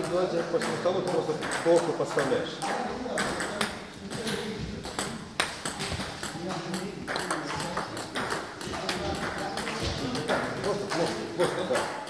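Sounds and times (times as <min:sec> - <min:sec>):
table tennis ball clicking: 0:00.0 - 0:12.0.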